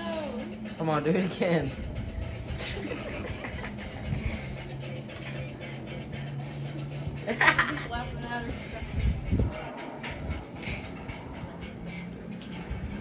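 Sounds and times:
background music: 0.0s - 13.0s
steady low hum: 0.0s - 13.0s.

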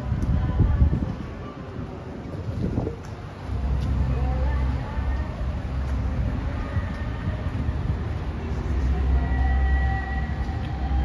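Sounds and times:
wind buffeting microphone: 0.0s - 9.2s
city noise: 0.0s - 11.0s.

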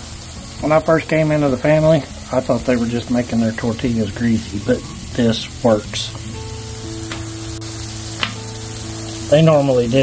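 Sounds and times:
tortillas sizzling in oil: 0.0s - 10.0s.

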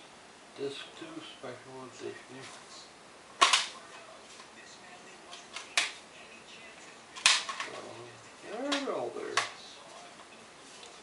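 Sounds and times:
plastic case snapping open: 3.4s - 3.7s, 7.2s - 7.7s.

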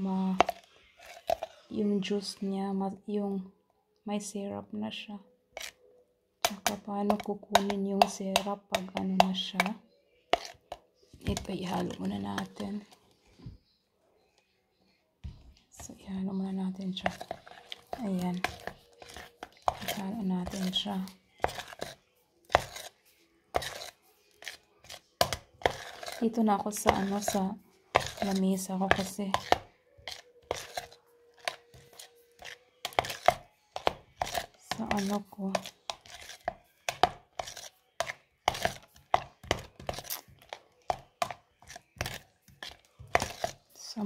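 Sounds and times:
spoon scraping plastic container: 0.0s - 2.4s, 5.5s - 13.8s, 15.2s - 44.0s.

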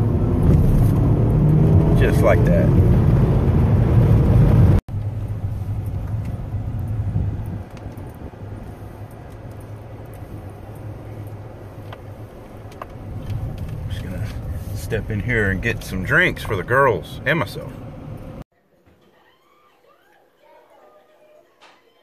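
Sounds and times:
car engine hum: 0.0s - 18.4s
road noise inside car: 0.0s - 18.5s.

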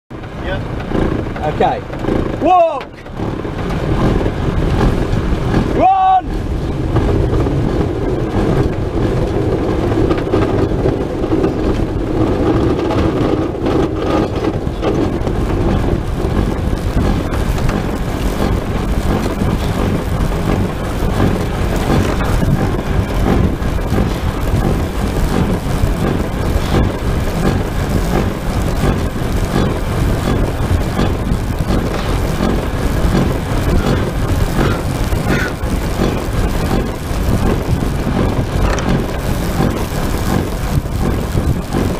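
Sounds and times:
rushing wind and low rumble: 0.1s - 41.9s
person shouting: 5.8s - 6.3s.

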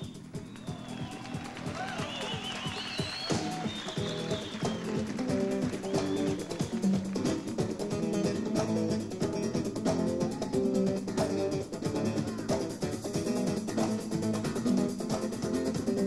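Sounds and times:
rapid percussion: 0.0s - 16.0s
electric bass line: 4.2s - 16.0s.

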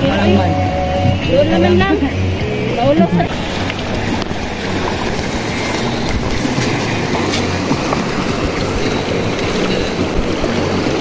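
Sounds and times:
legs wading and splashing: 0.0s - 11.0s
river water rushing over stones: 0.0s - 11.0s.

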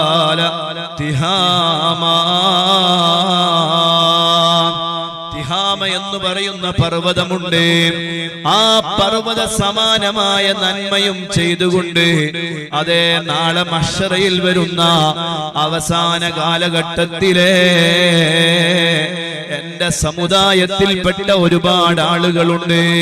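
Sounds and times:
man chanting into a microphone: 0.0s - 23.0s.

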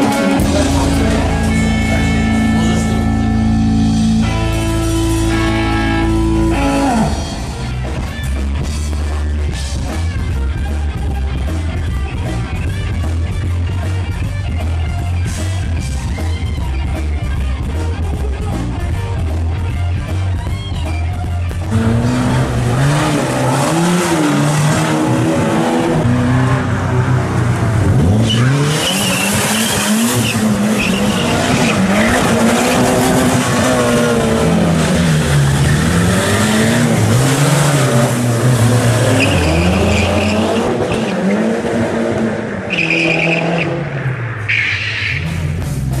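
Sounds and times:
car engine revving: 0.0s - 16.0s, 21.2s - 46.0s.

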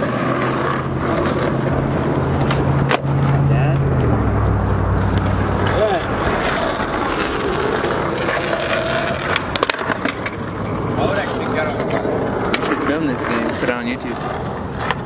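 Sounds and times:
sharp skateboard clack: 0.0s - 3.4s, 5.0s - 15.0s
skateboard wheels rolling on asphalt: 0.0s - 15.0s.

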